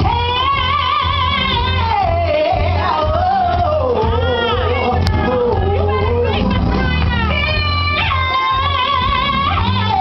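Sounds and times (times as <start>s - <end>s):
backing music with pulsing bass: 0.0s - 10.0s
woman singing into microphone: 0.0s - 10.0s.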